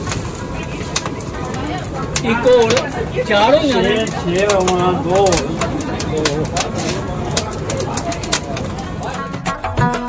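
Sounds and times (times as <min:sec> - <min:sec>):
background voices: 0:00.0 - 0:09.4
clicks and crackles on metal grate: 0:00.0 - 0:09.4
gas burner noise: 0:00.0 - 0:09.5.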